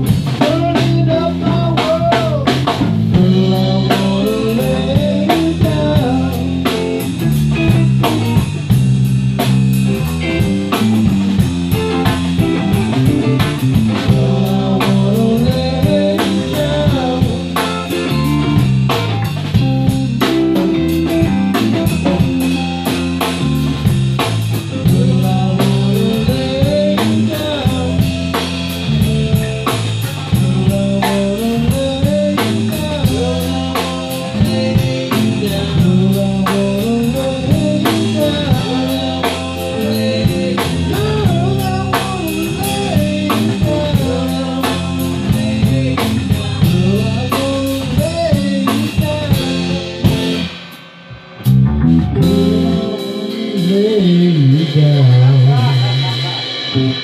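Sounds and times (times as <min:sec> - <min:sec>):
drum kit steady beat: 0:00.0 - 0:57.0
guitar lead with bending notes: 0:00.0 - 0:57.0.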